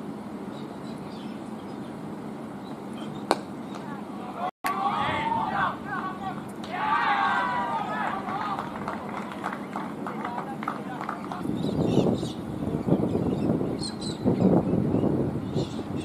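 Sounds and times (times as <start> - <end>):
scattered voices: 3.8 - 11.7.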